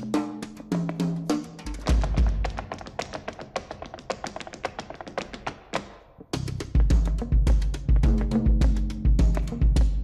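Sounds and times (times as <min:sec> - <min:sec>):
hand claps: 0:01.7 - 0:07.2.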